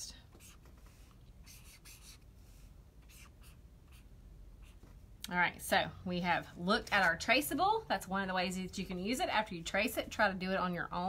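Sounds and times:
pen scratching on paper: 0.4s - 2.2s, 3.0s - 4.8s.

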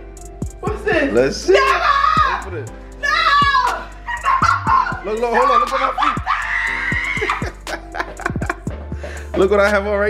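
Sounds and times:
background music with deep bass beat: 0.0s - 10.0s
woman screaming excitedly: 1.5s - 7.7s.

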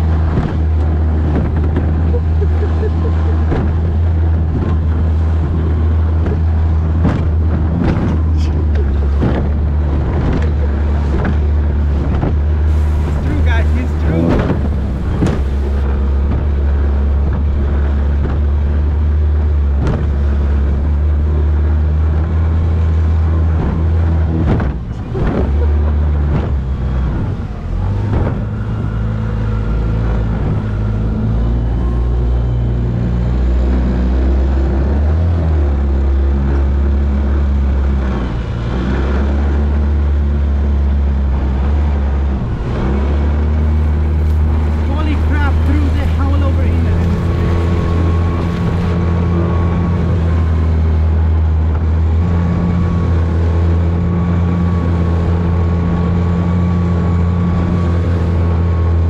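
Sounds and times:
outboard motor running: 0.0s - 59.0s
wind and water noise: 0.0s - 59.0s.

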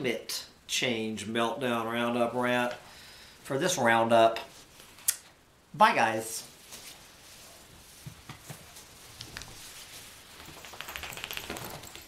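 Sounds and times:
small clicks and crackles: 9.1s - 12.0s.

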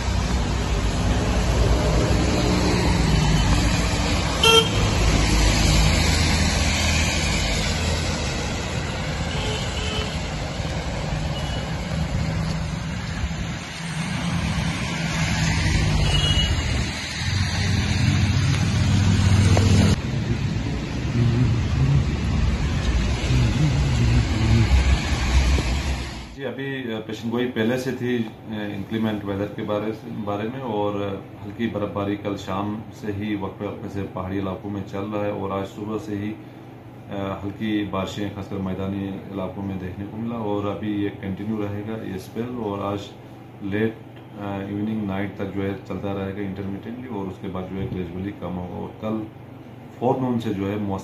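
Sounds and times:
cars passing on wet road: 0.0s - 26.4s
car horn toot: 4.4s - 5.0s, 9.3s - 10.2s, 16.0s - 16.6s.

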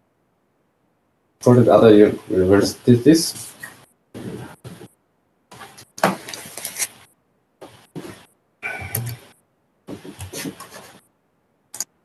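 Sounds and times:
garbled video call audio: 1.4s - 12.0s.

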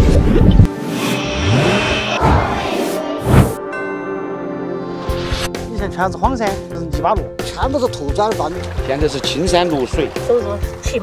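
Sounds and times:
background music: 0.0s - 11.0s
rising swoosh effect: 0.6s - 4.2s.

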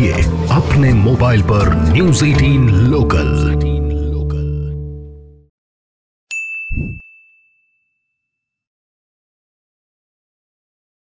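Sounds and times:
bright ding: 6.3s - 8.6s
jingle: 6.3s - 8.7s.

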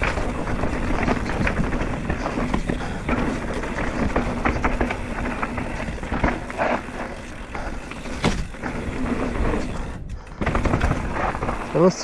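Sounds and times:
bike rattles and knocks: 0.0s - 12.0s
bike tyres on dirt trail: 0.0s - 12.0s.

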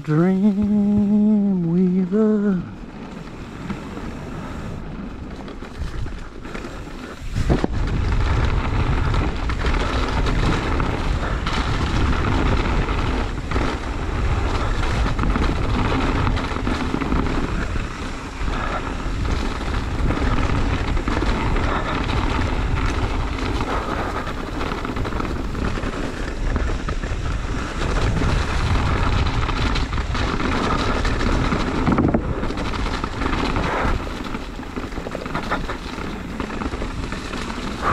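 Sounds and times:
tyres rolling over dirt: 0.0s - 37.9s
wind buffeting microphone: 0.0s - 37.9s.

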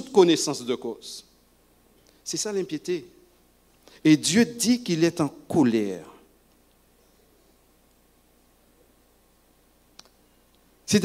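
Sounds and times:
man speaking: 2.2s - 3.2s, 4.0s - 6.2s
faint click: 9.9s - 10.6s.

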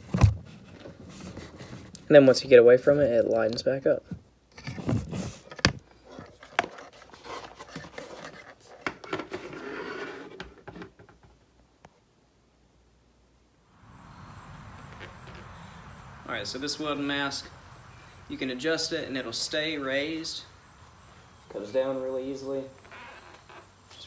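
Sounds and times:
plastic helmet rubbing and scraping: 0.0s - 2.0s, 4.5s - 11.3s, 14.8s - 15.6s.

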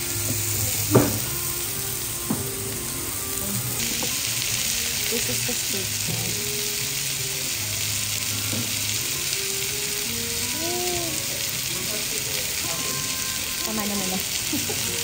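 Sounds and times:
steak sizzling on hot plate: 0.0s - 15.0s.

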